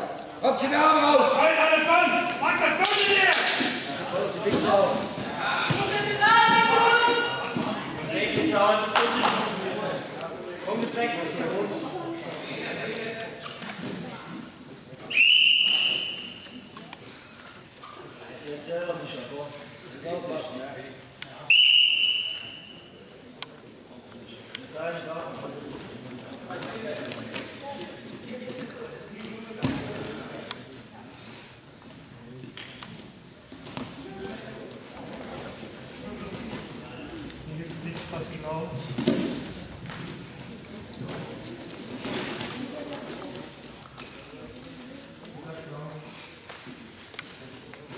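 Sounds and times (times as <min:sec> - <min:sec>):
referee's whistle blast: 0:15.1 - 0:16.4, 0:21.5 - 0:22.8.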